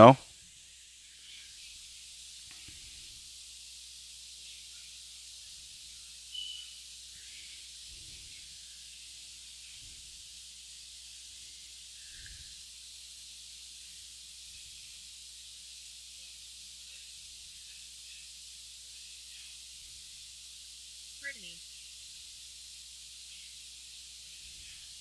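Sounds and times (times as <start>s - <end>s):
faint background hiss: 0.0s - 25.0s
short high beep: 6.4s - 6.6s.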